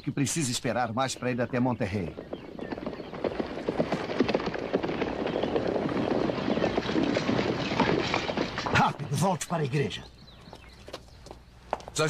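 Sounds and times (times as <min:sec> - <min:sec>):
horse hooves clattering: 0:00.4 - 0:12.0.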